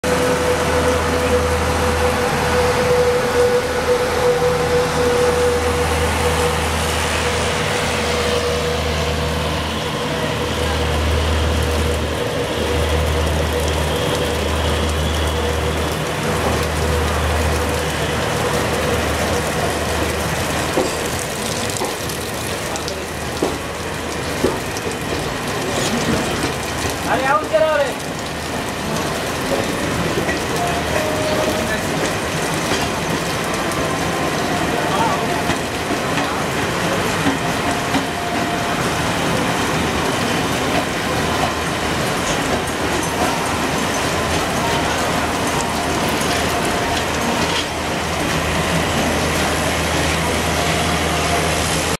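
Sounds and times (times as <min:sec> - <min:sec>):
train rumble and rail noise: 0:00.0 - 0:51.9.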